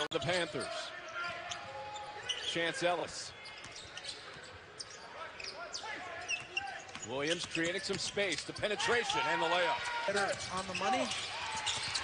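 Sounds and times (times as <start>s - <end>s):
voices echoing in arena: 0.0s - 12.0s.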